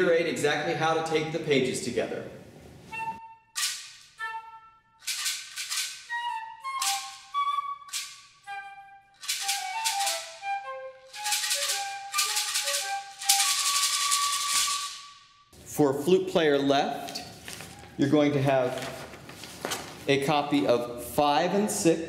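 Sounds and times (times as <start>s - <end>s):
flute melody: 2.9s - 15.5s
shaker strokes: 9.2s - 10.4s, 11.1s - 15.1s.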